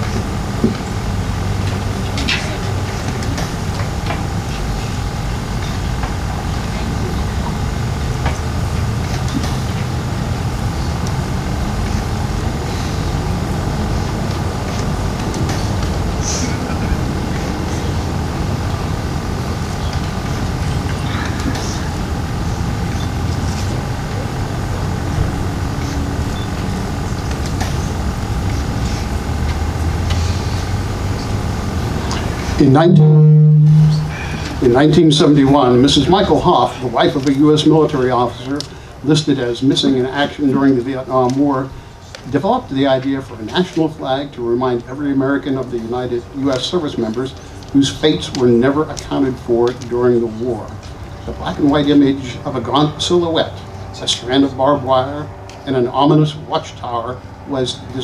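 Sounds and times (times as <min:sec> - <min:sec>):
faint hum: 0:00.0 - 0:58.0
low mechanical rumble: 0:00.0 - 0:58.0.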